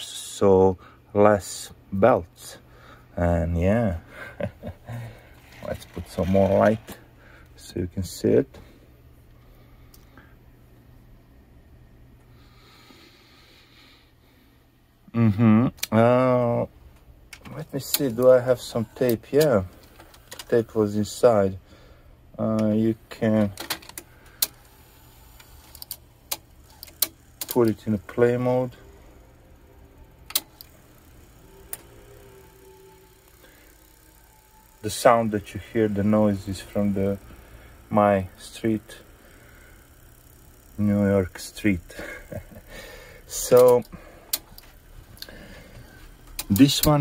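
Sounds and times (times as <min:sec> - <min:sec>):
light mechanical ticks: 0:43.3 - 0:45.4, 0:46.2 - 0:47.0
sharp mechanical click: 0:43.4 - 0:45.3.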